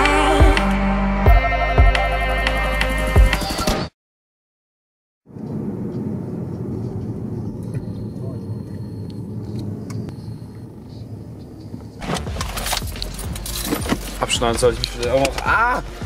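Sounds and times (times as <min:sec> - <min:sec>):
car engine and tyre rumble: 0:05.3 - 0:16.0.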